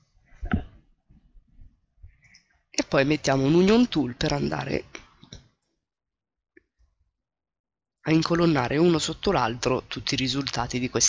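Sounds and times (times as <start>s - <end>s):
man speaking: 2.8s - 5.1s, 8.0s - 11.0s.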